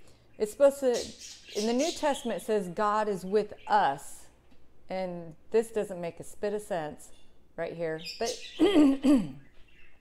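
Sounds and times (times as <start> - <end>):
woman clearing her throat: 8.6 - 9.4.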